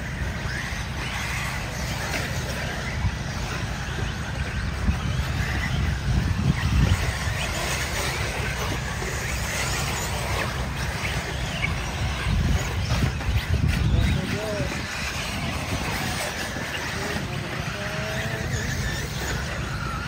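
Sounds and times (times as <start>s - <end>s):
rc buggies clattering: 0.0s - 20.0s.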